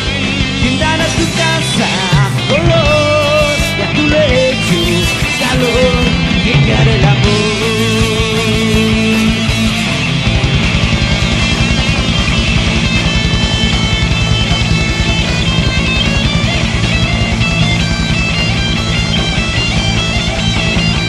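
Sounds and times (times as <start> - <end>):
bass guitar: 0.0 - 21.0
fast driving drums: 0.0 - 21.0
lead electric guitar runs: 0.0 - 21.0.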